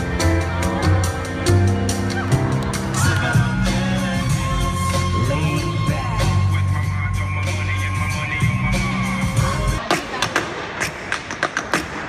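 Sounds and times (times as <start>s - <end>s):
backing music over sound system: 0.0s - 12.0s.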